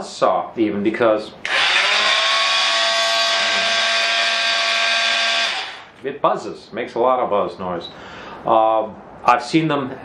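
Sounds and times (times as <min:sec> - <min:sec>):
oscillating saw buzzing: 0:01.4 - 0:06.0.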